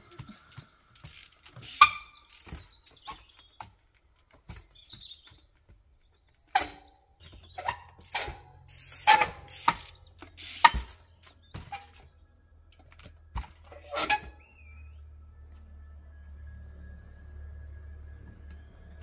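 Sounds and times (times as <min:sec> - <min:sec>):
bike tyres knocking on timber: 0:00.1 - 0:12.1
bike freewheel clicking: 0:00.5 - 0:03.7, 0:07.5 - 0:12.0.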